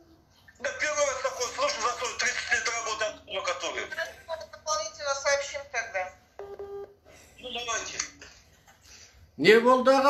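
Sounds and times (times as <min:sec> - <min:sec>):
smartphone beep: 0:06.4 - 0:07.0.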